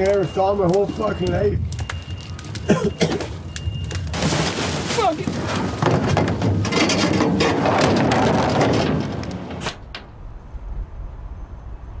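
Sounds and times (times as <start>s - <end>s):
dumpster lid banging shut: 4.1s - 9.9s.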